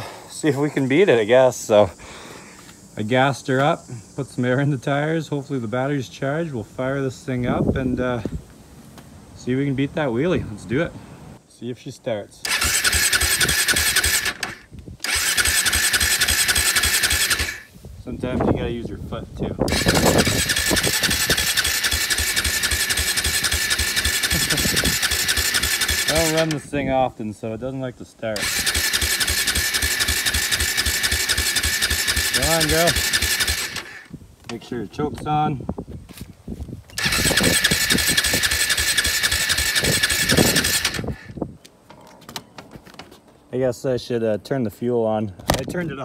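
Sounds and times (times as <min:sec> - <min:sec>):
engine cranking with starter whine: 0:12.4 - 0:17.7, 0:19.7 - 0:26.7, 0:28.4 - 0:34.1, 0:36.9 - 0:41.4.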